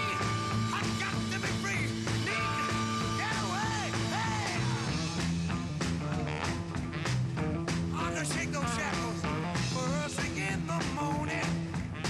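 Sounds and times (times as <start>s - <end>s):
rock band playing live: 0.0s - 12.0s.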